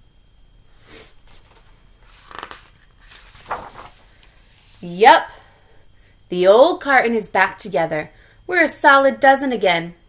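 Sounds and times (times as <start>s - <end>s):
book pages rustling: 1.0s - 4.9s.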